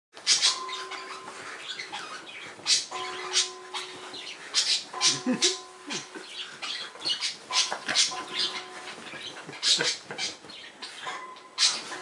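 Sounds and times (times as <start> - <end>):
paws rustling bed covers: 0.2 - 12.0.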